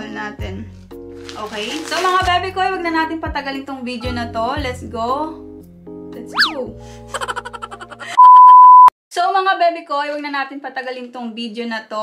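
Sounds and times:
test tone beep: 0:08.2 - 0:08.9.

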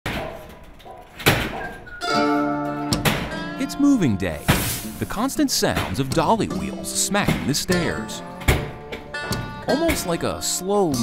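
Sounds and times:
dolly wheels knocking on stairs: 0:05.7 - 0:11.0.

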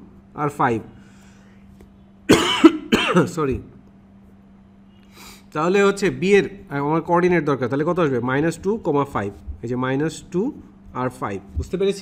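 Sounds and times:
man coughing: 0:02.3 - 0:03.4.

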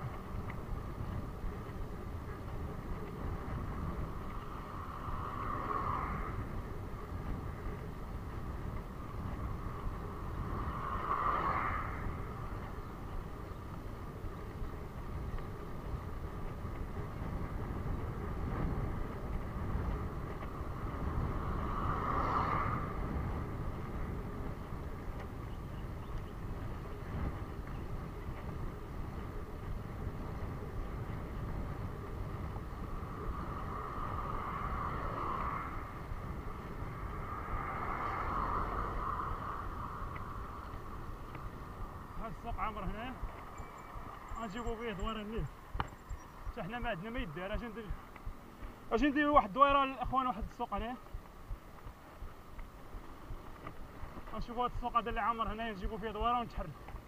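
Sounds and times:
low road rumble: 0:00.0 - 0:57.0
motor vehicles passing: 0:00.0 - 0:57.0
wind rushing over camera: 0:00.0 - 0:57.0.

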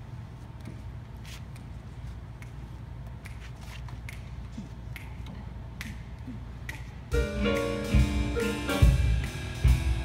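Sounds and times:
finger snaps: 0:02.3 - 0:07.1.

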